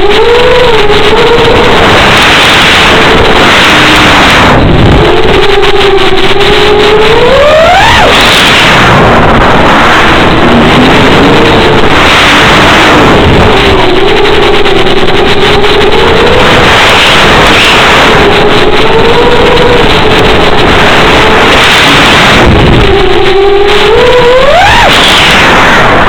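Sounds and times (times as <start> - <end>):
electric motor and propeller buzz: 0.0 - 26.0
wind rush: 0.0 - 26.0.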